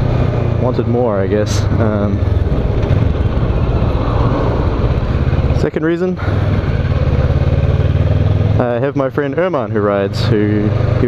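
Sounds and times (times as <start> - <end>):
motorcycle engine running: 0.0 - 11.0
wind noise: 2.3 - 5.6.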